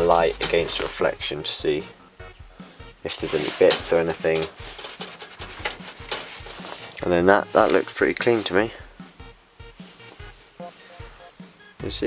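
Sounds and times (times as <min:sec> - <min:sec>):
cloth wiping acrylic sheet: 0:03.1 - 0:08.8, 0:09.7 - 0:11.2
small ticks of sheet handling: 0:03.3 - 0:08.4.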